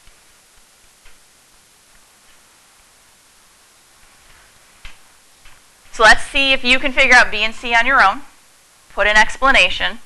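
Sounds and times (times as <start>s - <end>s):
room hiss: 0.0s - 10.0s
woman's voice: 5.9s - 8.3s, 8.9s - 10.0s.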